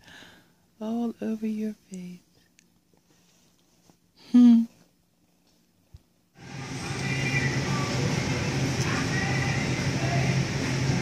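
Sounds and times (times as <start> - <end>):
low hum: 6.4 - 11.0.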